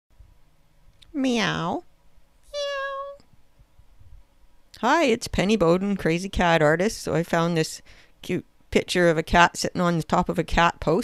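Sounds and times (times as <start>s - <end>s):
cat meow: 2.5s - 3.2s.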